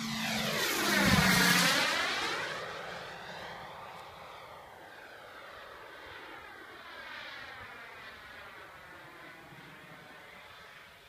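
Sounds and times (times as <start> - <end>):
model jet engine receding: 0.0 - 11.0.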